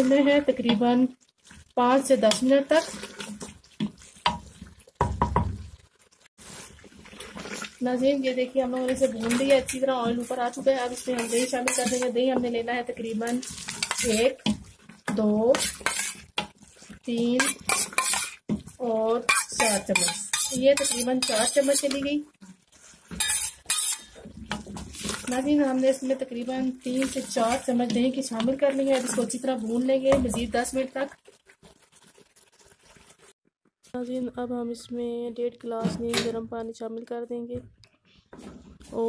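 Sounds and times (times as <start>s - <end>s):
meat frying in oil: 0.0s - 33.4s
utensil clattering against metal pot: 9.2s - 12.2s, 19.3s - 22.0s.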